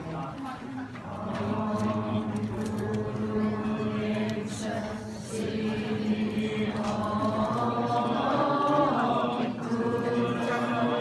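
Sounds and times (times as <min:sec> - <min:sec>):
many voices chanting: 0:01.0 - 0:11.0.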